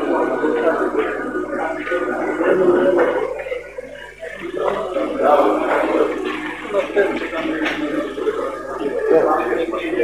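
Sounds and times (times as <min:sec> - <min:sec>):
indistinct talking: 0:00.0 - 0:10.0.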